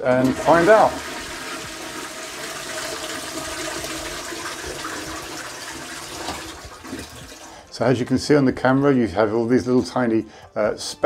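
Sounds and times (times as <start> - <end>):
toilet flushing: 0.0 - 8.2.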